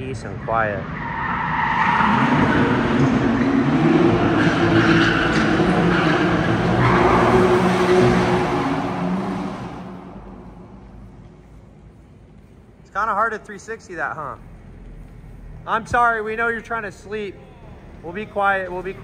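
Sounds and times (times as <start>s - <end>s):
tires screeching on pavement: 0.2s - 10.8s, 14.2s - 19.0s
car engine at high revs: 1.2s - 10.6s.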